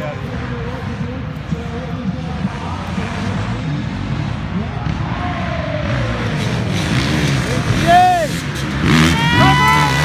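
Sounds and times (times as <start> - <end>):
dirt bike engines revving: 0.0 - 10.0.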